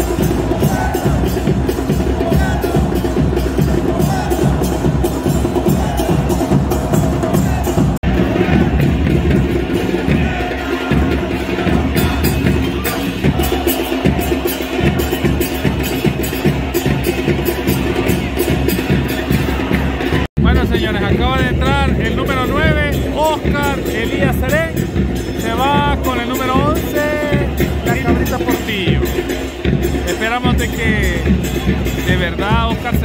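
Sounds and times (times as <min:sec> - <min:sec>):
crowd chanting: 0:00.0 - 0:20.4, 0:22.1 - 0:30.3
drum band beating rhythm: 0:00.0 - 0:33.0.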